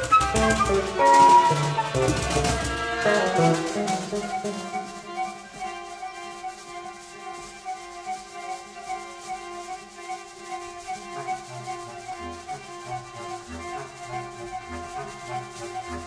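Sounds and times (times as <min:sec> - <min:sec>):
held instrument tones: 0:00.0 - 0:16.0
soft rubbing scraping texture: 0:00.0 - 0:16.0.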